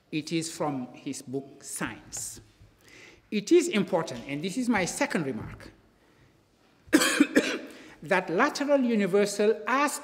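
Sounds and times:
man coughing and clearing throat: 6.9s - 7.8s.

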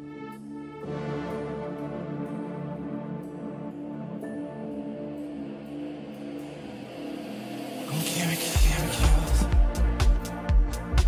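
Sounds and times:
held synth chord: 0.0s - 8.0s.

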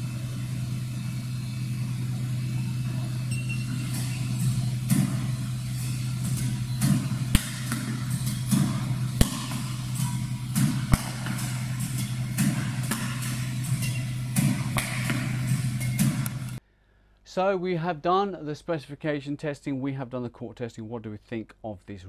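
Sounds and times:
low mechanical hum: 0.0s - 16.6s
racket striking shuttlecock: 3.0s - 16.6s.

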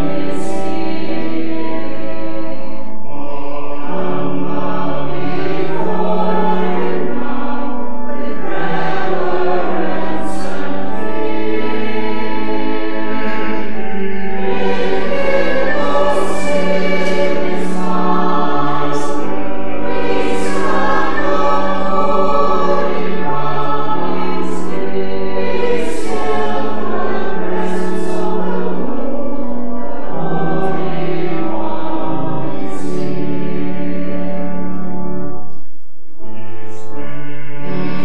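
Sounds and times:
choir and congregation singing: 0.0s - 35.5s, 36.2s - 38.0s
low held notes: 0.0s - 35.5s.

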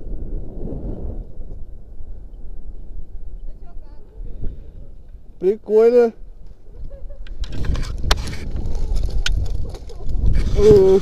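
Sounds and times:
wind rushing over microphone: 0.0s - 11.0s
rope gear clicks: 7.2s - 10.2s.

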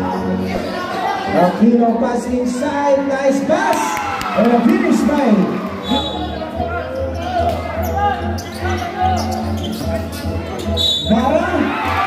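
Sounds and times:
background music: 0.0s - 12.0s
crowd chatter and shouts: 0.0s - 12.0s.

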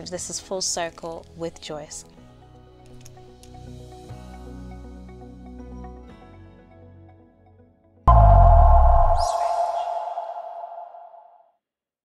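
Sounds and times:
deep bass hit: 8.1s - 11.2s
faint high sweep: 8.1s - 11.3s
ringing ping-like tone: 8.1s - 11.3s.

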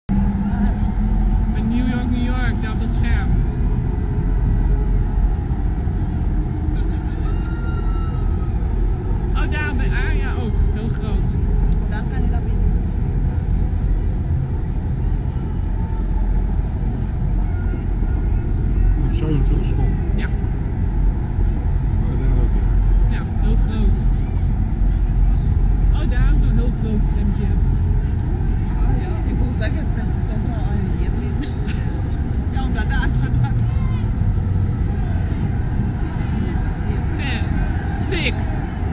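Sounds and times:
city traffic rumble: 0.0s - 38.9s
people's voices: 0.1s - 13.1s, 14.8s - 20.7s, 21.6s - 38.9s.

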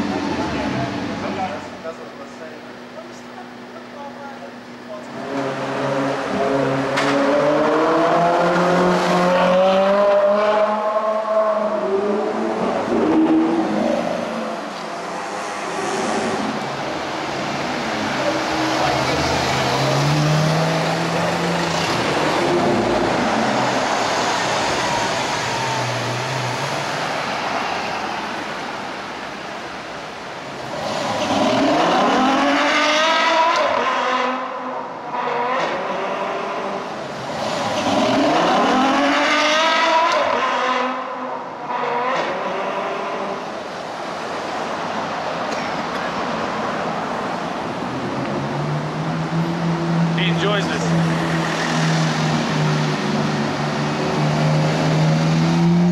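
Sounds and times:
car engines accelerating: 0.0s - 55.9s
traffic noise: 0.0s - 55.9s
engine revving hard: 18.1s - 27.2s, 30.6s - 34.4s, 37.2s - 41.0s.

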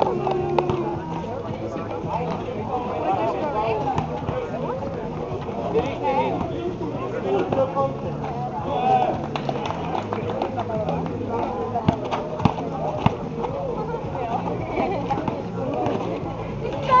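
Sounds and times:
people talking and calling out: 0.0s - 17.0s.

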